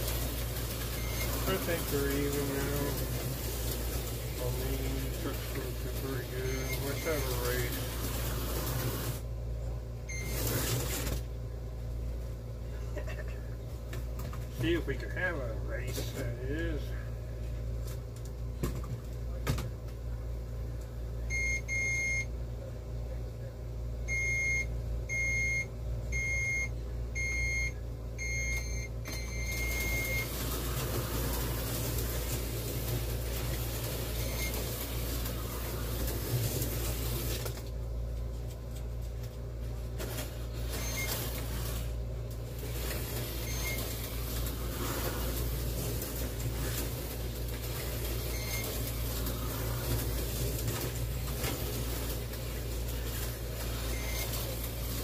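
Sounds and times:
slot cars whirring: 0.0 - 9.3, 10.1 - 11.3, 29.1 - 37.7, 39.9 - 55.0.

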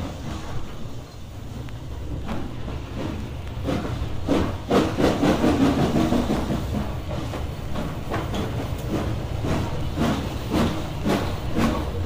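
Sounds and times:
steam train rumbling: 0.0 - 12.0.

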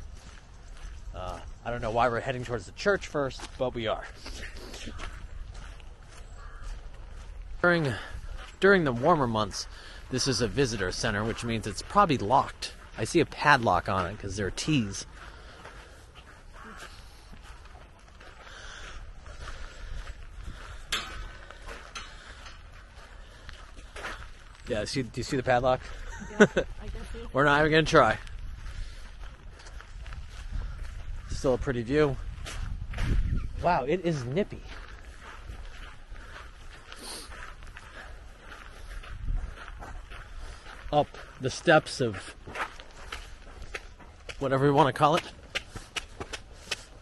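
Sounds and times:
footsteps on gravel: 0.0 - 47.0
wind buffeting microphone: 4.8 - 9.2, 18.8 - 24.4, 25.8 - 41.3.

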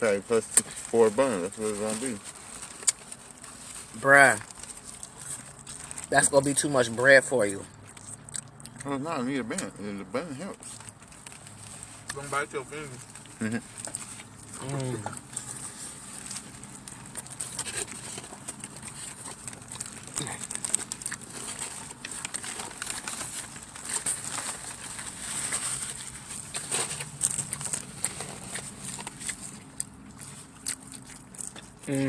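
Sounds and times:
paper wrapper crinkling: 0.0 - 8.1, 10.5 - 31.9
wet chewing and lip-smacking: 2.3 - 3.8, 4.4 - 9.8, 10.6 - 32.0.

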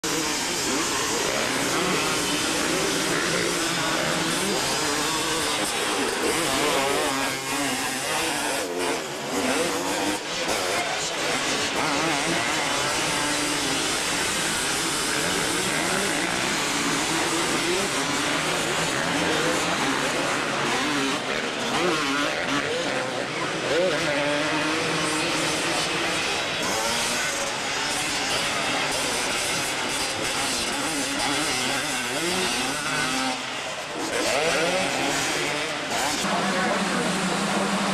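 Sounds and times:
dirt bike engines revving: 0.0 - 37.9.

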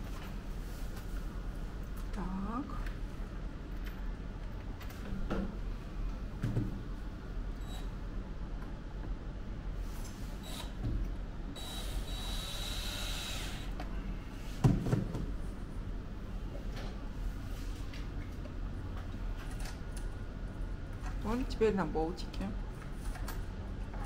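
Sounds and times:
steady low hum: 0.0 - 24.0
cordless drill driving a fastener: 10.4 - 10.8, 11.6 - 13.7.

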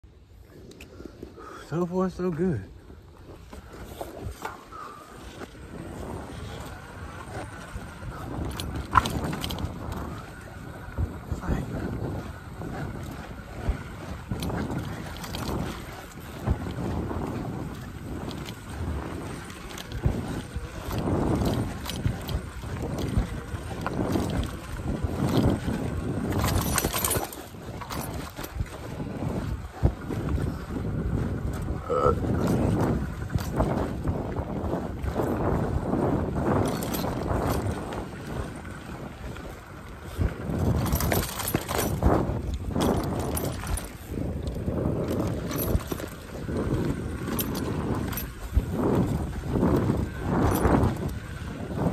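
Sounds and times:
bike tyres rumbling on dirt: 0.0 - 51.9
wind buffeting microphone: 0.0 - 51.9
bike knocking and rattling: 2.0 - 51.9.

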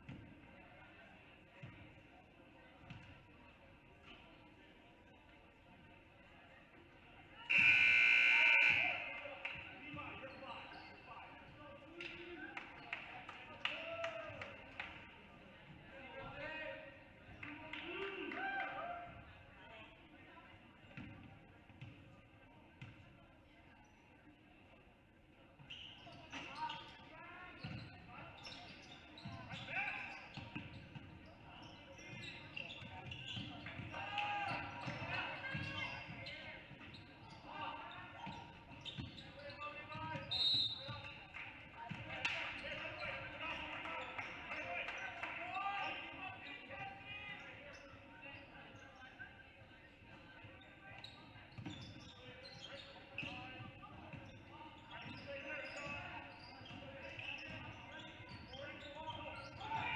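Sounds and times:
voices echoing: 0.0 - 59.9
whistle blast: 7.5 - 9.0.

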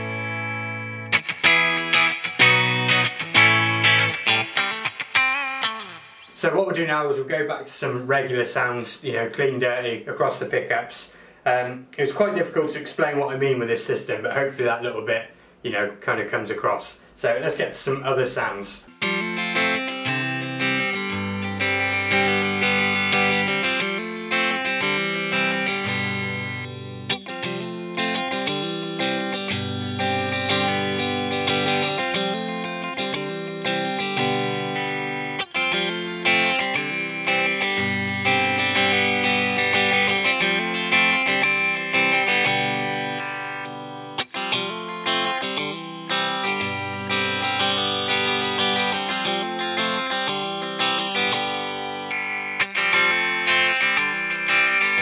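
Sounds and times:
electric guitar through amplifier: 0.0 - 7.2, 18.7 - 55.0.

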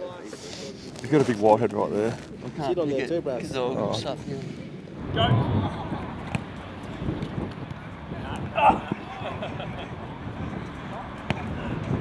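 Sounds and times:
wind: 0.0 - 12.0.

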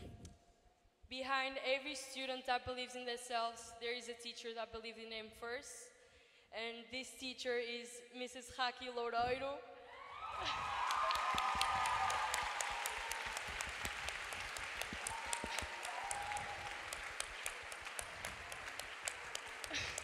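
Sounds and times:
audience applause: 10.2 - 20.0.

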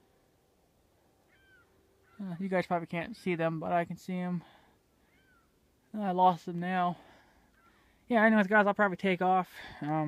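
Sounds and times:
faint seagull call: 1.3 - 2.3, 5.0 - 5.6, 7.5 - 7.9.

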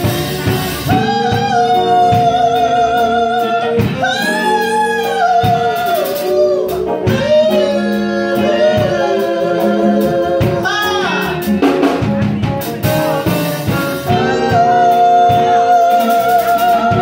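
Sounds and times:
drums: 0.0 - 17.0
electric bass: 0.0 - 17.0
woman singing into a microphone: 0.9 - 11.3, 14.1 - 17.0.

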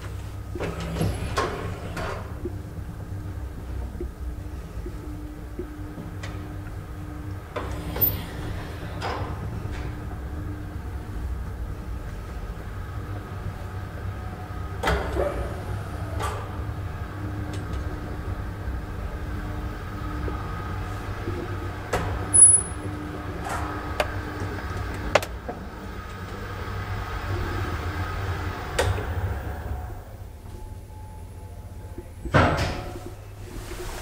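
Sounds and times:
elevator car rumbling hum: 0.0 - 34.0.

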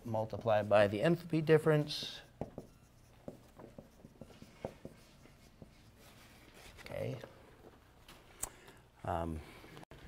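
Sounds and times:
marker writing on whiteboard: 0.0 - 6.8.

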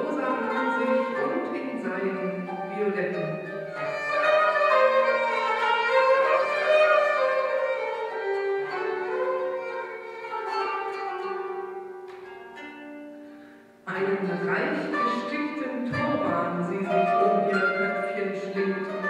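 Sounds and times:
bowed fiddle melody: 0.0 - 19.0
plucked qanun: 0.0 - 19.0.

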